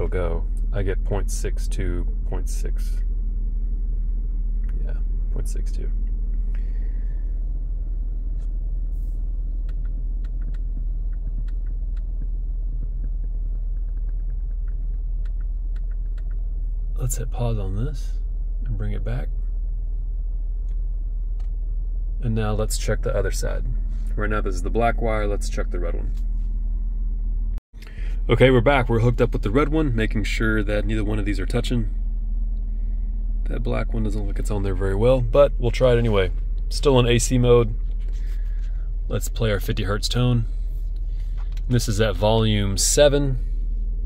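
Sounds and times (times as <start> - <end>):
deep sine test tone hum: 0.0 - 44.0.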